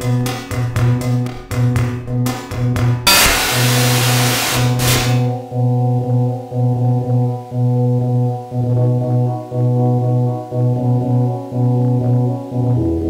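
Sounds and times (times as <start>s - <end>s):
electronic music: 3.0s - 13.0s
noise sweep crash: 3.1s - 5.4s
pulsing buzzy synth note: 3.1s - 5.7s.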